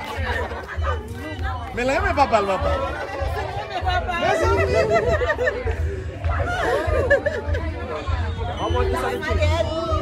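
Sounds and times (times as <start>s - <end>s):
voices talking and exclaiming: 0.0s - 10.0s.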